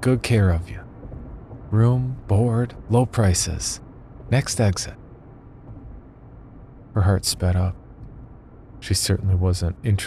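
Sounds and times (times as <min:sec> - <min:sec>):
faint low rumble: 0:00.0 - 0:10.0.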